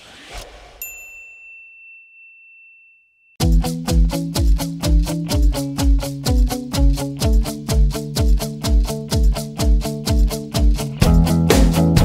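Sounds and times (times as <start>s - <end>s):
high-pitched bell ding: 0.8s - 3.4s.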